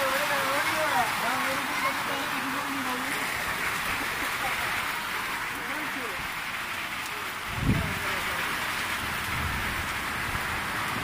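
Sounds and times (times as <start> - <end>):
rain falling: 0.0 - 11.0.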